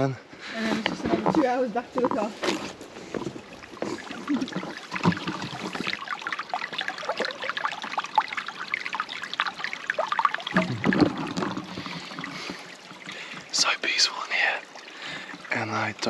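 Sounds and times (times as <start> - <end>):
stream babbling over rocks: 1.2 - 16.0.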